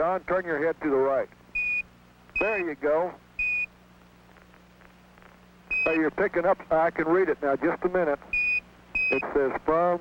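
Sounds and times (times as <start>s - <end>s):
faint radio hiss: 0.0s - 10.0s
low steady hum: 0.0s - 10.0s.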